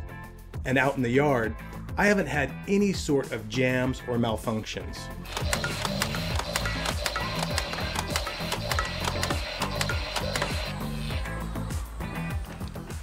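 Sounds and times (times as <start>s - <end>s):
background music: 0.0s - 13.0s
rapid clicks of firing mechanism: 5.3s - 11.2s
toy blaster motor whine: 5.3s - 12.4s.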